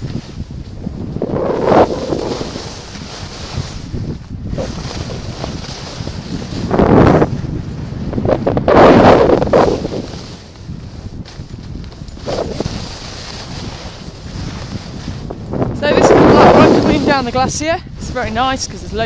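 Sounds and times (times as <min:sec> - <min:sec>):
wind on microphone: 0:00.0 - 0:19.0
skis hissing over snow: 0:01.8 - 0:06.7, 0:09.4 - 0:10.5, 0:12.3 - 0:15.2, 0:16.3 - 0:18.7.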